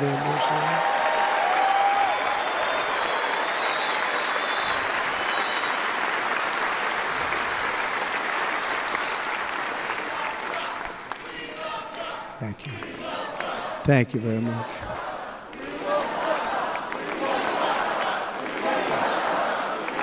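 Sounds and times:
large audience applauding: 0:00.0 - 0:20.0.

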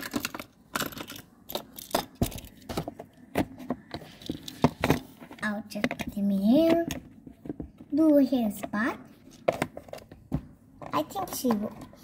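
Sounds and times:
plastic toys knocking: 0:00.0 - 0:12.0.

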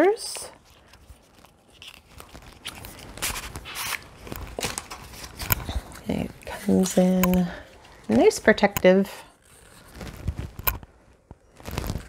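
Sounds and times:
packaging rustling: 0:00.3 - 0:08.6, 0:09.3 - 0:12.0.

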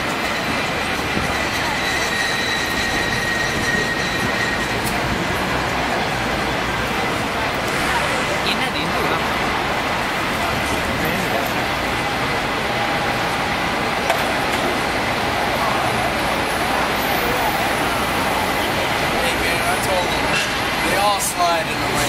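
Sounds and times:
cable car rolling on track: 0:00.0 - 0:22.0
city traffic noise: 0:00.0 - 0:22.0
faint voices: 0:00.0 - 0:22.0.

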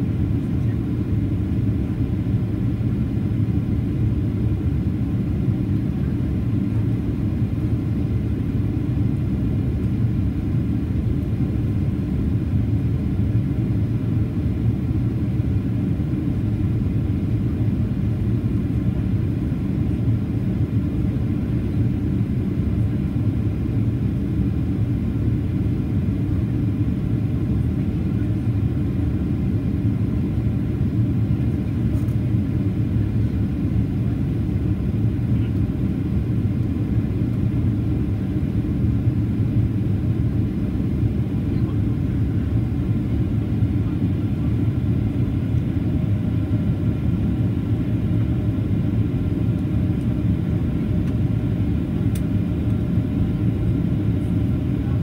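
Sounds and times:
jet engine cabin rumble: 0:00.0 - 0:55.0.

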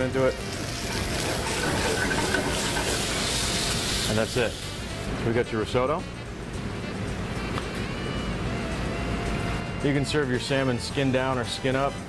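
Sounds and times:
food sizzling in a frying pan: 0:00.0 - 0:05.2.

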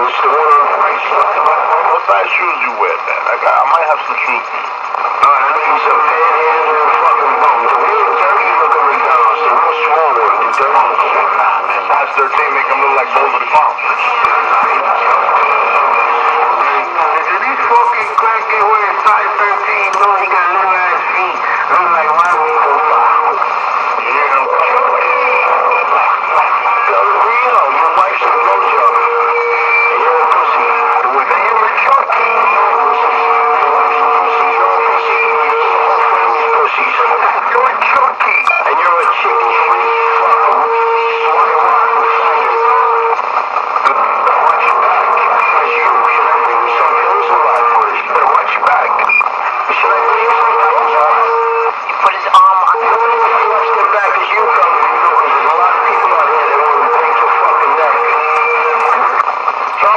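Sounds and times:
people talking over speaker: 0:00.0 - 0:59.9.

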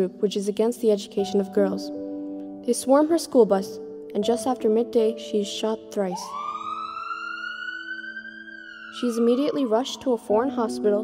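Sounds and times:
music holding low chord: 0:00.0 - 0:11.0
siren wail: 0:06.1 - 0:10.5.

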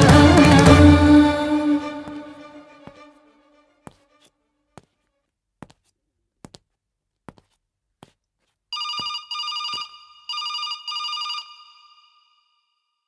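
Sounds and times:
telephone ringing: 0:08.8 - 0:12.6.

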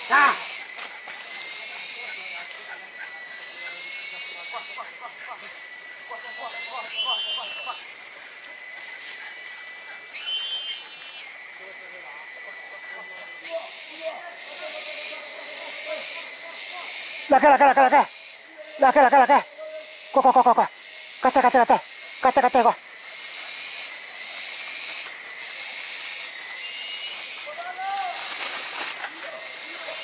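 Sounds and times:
bursts of rapid insect calls: 0:00.0 - 0:30.0
cicadas droning: 0:00.0 - 0:30.0.

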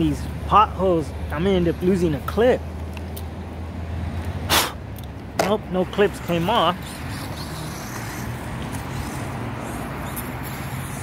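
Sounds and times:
sharp breath through nose: 0:04.5 - 0:04.8.

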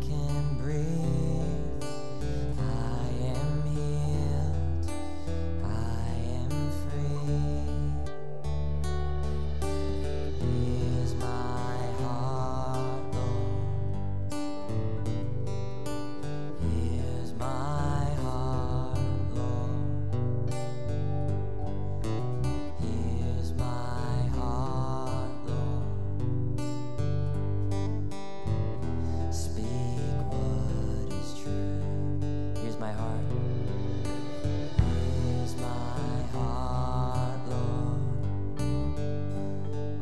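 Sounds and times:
man singing long held notes: 0:00.0 - 0:14.3, 0:16.4 - 0:20.2, 0:22.5 - 0:26.2, 0:29.0 - 0:38.7
keyboard: 0:00.0 - 0:40.0
strummed acoustic guitar: 0:00.0 - 0:40.0
drums: 0:33.3 - 0:36.5.

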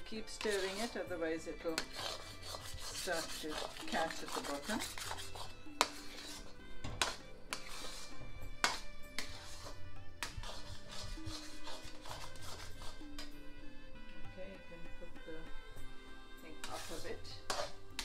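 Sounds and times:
metal spatula scraping pan: 0:00.0 - 0:13.5, 0:16.5 - 0:18.0
background music held notes: 0:00.0 - 0:18.0.

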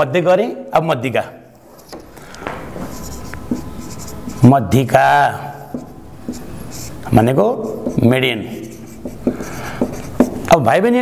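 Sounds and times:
pen scratching on paper: 0:02.8 - 0:10.5.

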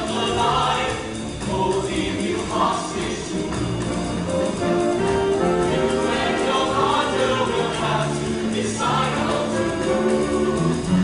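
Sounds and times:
choir singing in parts: 0:00.0 - 0:11.0.

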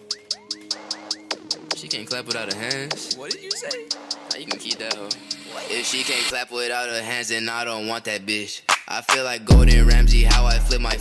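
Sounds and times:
sparse beat with ticks: 0:00.0 - 0:05.5
person rapping: 0:01.6 - 0:11.0.

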